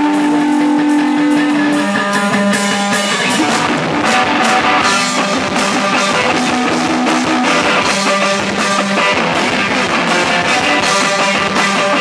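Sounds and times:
drum kit: 0.0s - 12.0s
electric guitars sustained notes: 0.0s - 12.0s.

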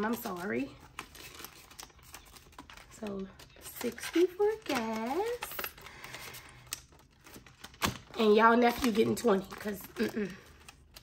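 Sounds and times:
banknotes rustling: 0.0s - 11.0s.

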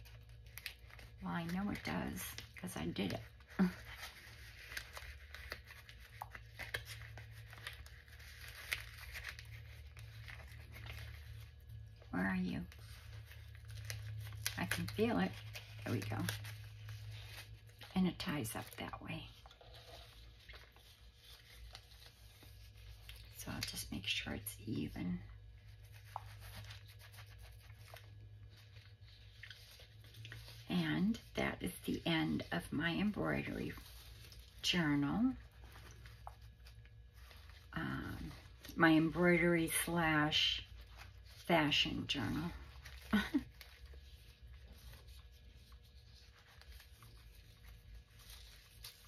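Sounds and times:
low steady hum: 0.0s - 49.0s
paper rustling and crinkling: 0.0s - 49.0s.

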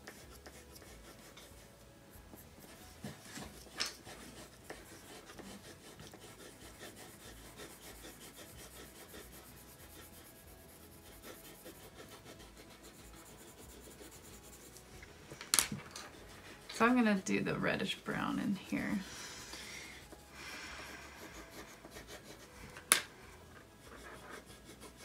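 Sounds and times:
colored pencils scratching on paper: 0.0s - 19.1s, 19.9s - 25.0s.

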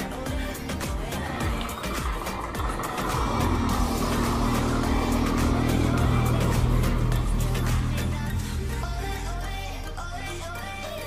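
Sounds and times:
background music: 0.0s - 11.0s
truck engine drone: 0.0s - 11.0s.

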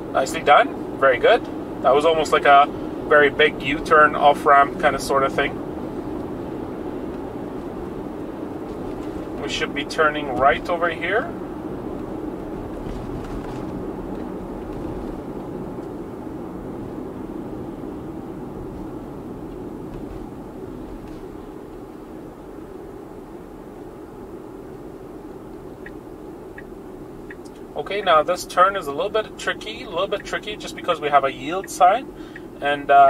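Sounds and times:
road and tyre noise in car: 0.0s - 33.0s.

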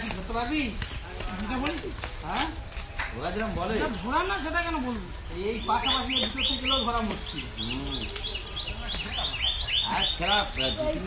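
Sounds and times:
bird chirping rapidly: 5.1s - 11.0s.

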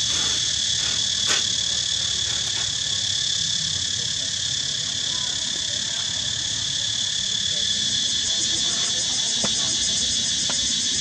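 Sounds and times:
insects buzzing: 0.0s - 11.0s.

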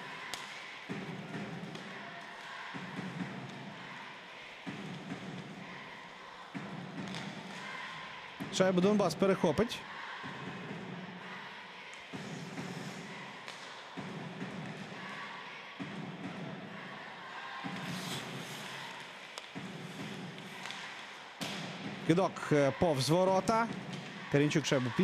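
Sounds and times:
arena background noise: 0.0s - 25.0s
hockey sticks and puck knocking: 0.3s - 3.6s, 17.8s - 21.8s.

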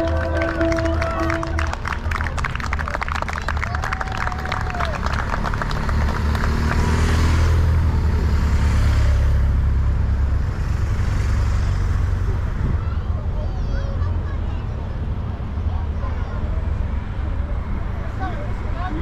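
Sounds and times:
motorcycle passing: 0.0s - 2.2s, 4.8s - 12.4s
spectators clapping: 0.0s - 7.3s
cars driving by: 0.0s - 19.0s.

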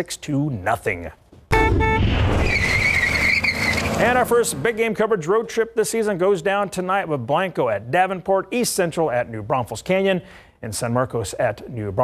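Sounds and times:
tyres screeching: 2.3s - 4.6s.

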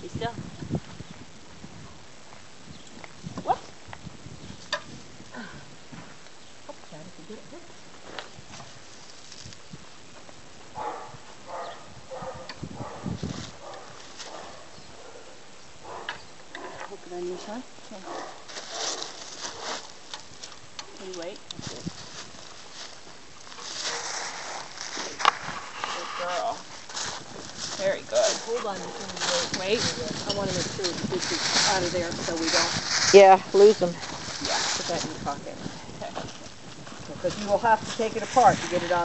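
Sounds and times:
soft rustling: 17.1s - 39.0s.

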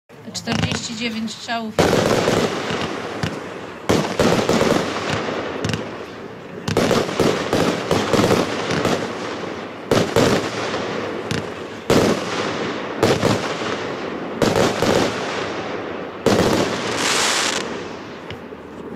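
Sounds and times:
firework battery reports: 0.1s - 13.9s.

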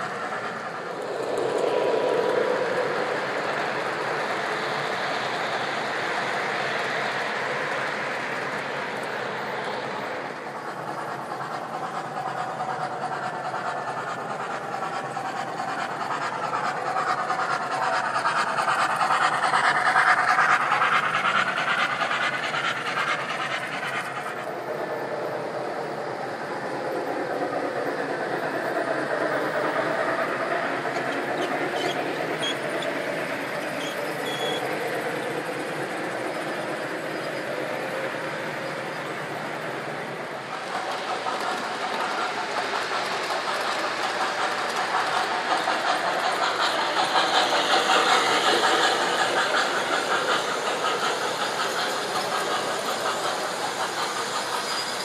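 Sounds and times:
model trains rolling on track: 0.0s - 55.0s.

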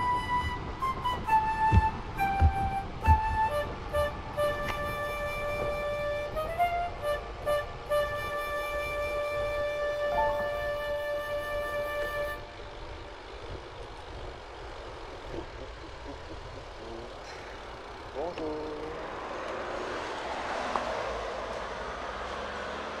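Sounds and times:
flute music: 0.0s - 13.1s
bicycle road noise: 0.0s - 23.0s.

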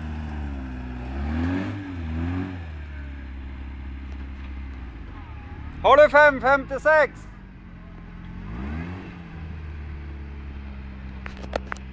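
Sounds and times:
truck engine running steadily: 0.0s - 11.9s.

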